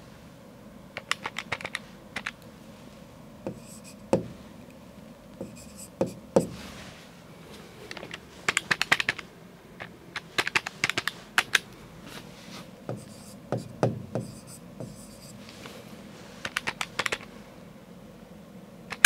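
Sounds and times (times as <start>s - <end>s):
calculator keys clicking: 1.0s - 2.4s, 7.9s - 9.2s, 9.8s - 11.6s, 16.4s - 17.3s
dull knocks: 3.5s - 4.4s, 12.9s - 15.0s.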